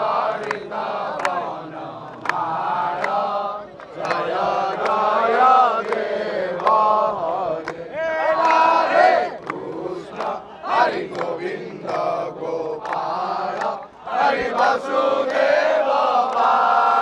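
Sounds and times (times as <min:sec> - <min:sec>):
men chanting a hymn: 0:00.0 - 0:17.0
sharp hand claps: 0:00.3 - 0:07.0, 0:07.6 - 0:12.2, 0:12.8 - 0:17.0.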